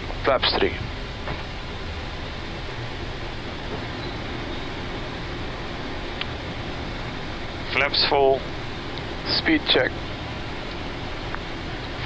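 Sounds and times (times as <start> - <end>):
air-conditioning noise: 0.0 - 12.0.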